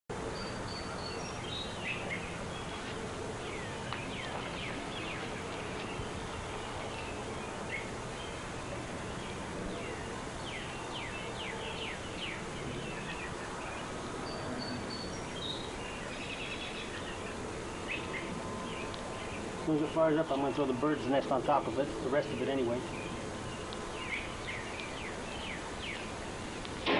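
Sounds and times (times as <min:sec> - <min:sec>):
birds chirping: 0:00.1 - 0:26.9
steady background hiss: 0:00.1 - 0:26.9.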